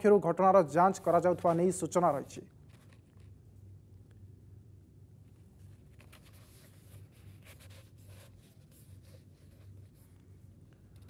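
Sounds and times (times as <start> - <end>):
faint steady low hum: 0.0 - 11.0.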